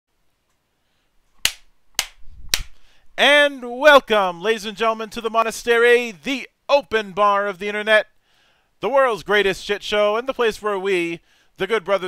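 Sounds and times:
sharp snapping hits with ring: 0:01.4 - 0:02.8.

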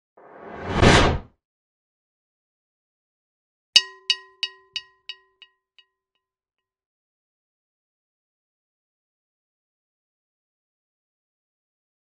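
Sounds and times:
whoosh sound effect: 0:00.2 - 0:01.3.

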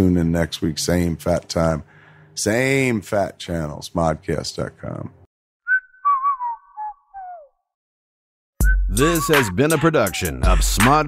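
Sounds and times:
whistling: 0:05.6 - 0:07.7, 0:08.6 - 0:09.5.

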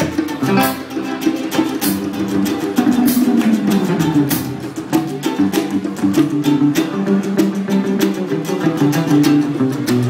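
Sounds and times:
acoustic guitar: 0:00.0 - 0:10.0
percussion hits: 0:00.0 - 0:10.0.

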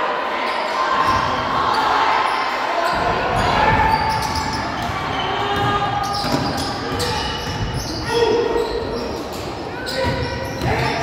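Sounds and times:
voices in a gymnasium: 0:00.0 - 0:11.0.

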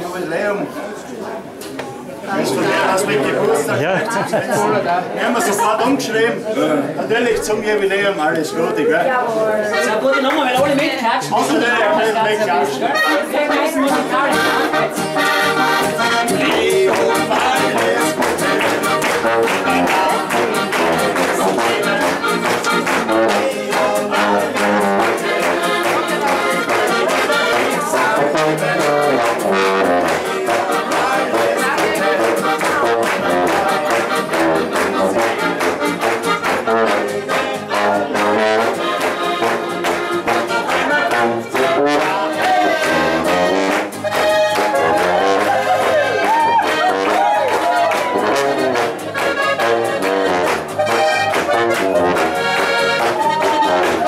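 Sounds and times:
live band playing polka: 0:02.4 - 0:06.5, 0:09.0 - 0:54.0.

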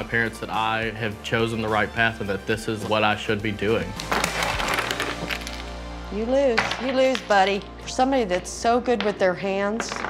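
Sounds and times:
wooden blocks clattering: 0:04.0 - 0:05.6, 0:08.9 - 0:10.0.

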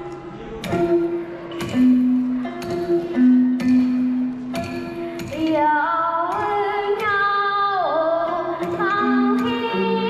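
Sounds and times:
low plucked lute notes: 0:00.0 - 0:10.0
woman singing: 0:05.2 - 0:10.0.

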